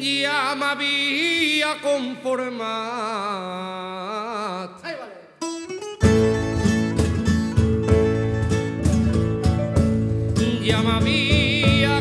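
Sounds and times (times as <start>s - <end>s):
person singing with vibrato: 0.0s - 5.6s, 10.4s - 12.0s
folk band playing strings: 6.0s - 12.0s.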